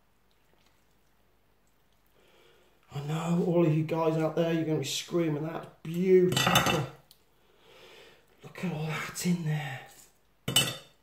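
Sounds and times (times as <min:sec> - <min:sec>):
faint breath drawn in: 0:02.1 - 0:02.8, 0:07.4 - 0:08.3
person speaking: 0:02.9 - 0:07.0, 0:08.4 - 0:10.2.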